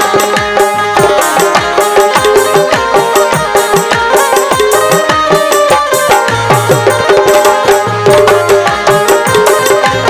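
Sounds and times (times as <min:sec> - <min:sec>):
electronic drum pad: 0:00.0 - 0:10.0.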